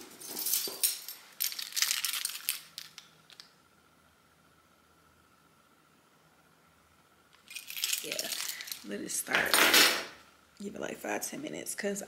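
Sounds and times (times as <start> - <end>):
keys jangling: 0.0 - 3.0, 7.5 - 8.8.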